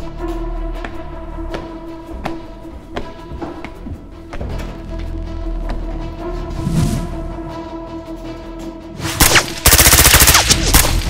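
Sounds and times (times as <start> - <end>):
rapid automatic gunfire: 9.2 - 11.0.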